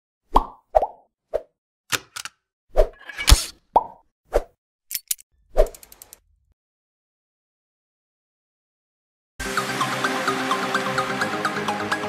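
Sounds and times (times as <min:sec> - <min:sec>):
cartoon pops and plops: 0:00.3 - 0:01.1.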